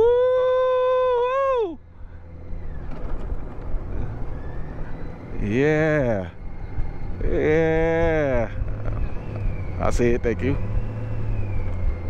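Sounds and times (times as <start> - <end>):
motorcycle engine and road rumble: 0.0 - 12.0.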